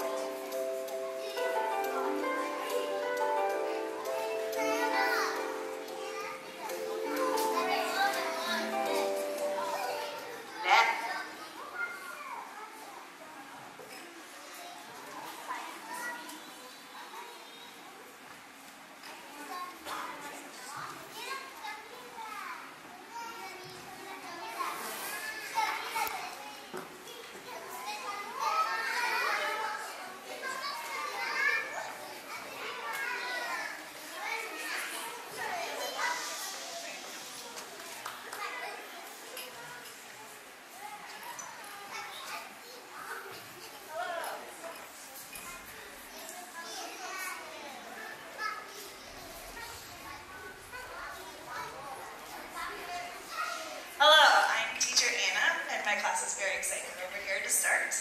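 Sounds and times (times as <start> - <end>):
children chattering and calling out: 0.0 - 58.0.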